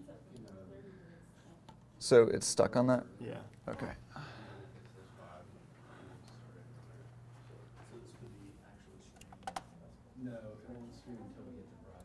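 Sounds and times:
computer mouse clicks: 9.2s - 9.7s.

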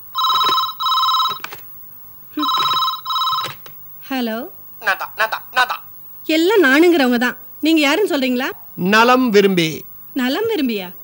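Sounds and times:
desk telephone ringing: 0.0s - 1.6s, 2.4s - 3.7s.

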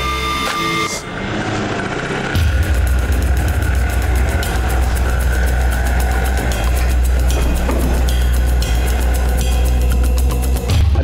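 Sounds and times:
deep bass drone: 0.0s - 11.0s
ticking percussion: 2.4s - 10.7s.

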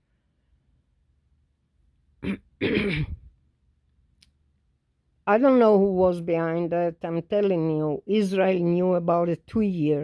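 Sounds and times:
person clearing throat: 2.2s - 3.3s.

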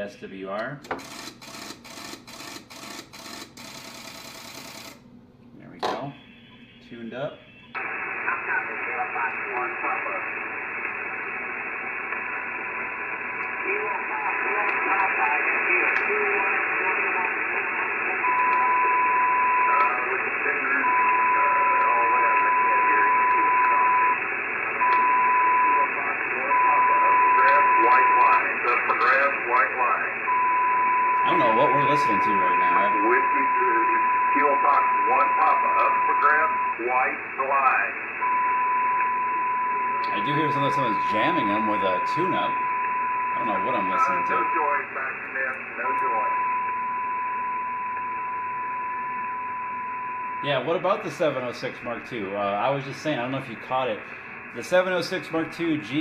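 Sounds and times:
faint garbled radio voices: 5.6s - 38.4s, 39.2s - 46.8s, 50.4s - 56.0s
radio band noise: 5.6s - 56.0s
steady radio whistle: 6.1s - 56.0s.

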